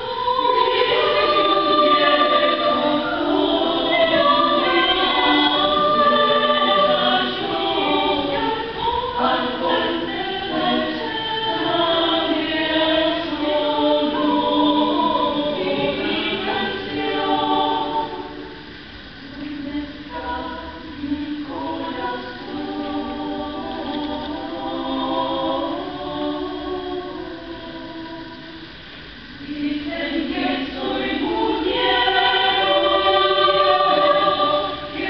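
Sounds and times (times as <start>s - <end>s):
women's choir singing: 0.0s - 35.0s.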